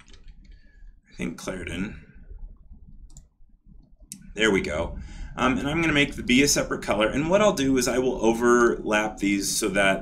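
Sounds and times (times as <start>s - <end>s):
low room hum: 0.0s - 10.0s
computer mouse click: 2.6s - 4.3s.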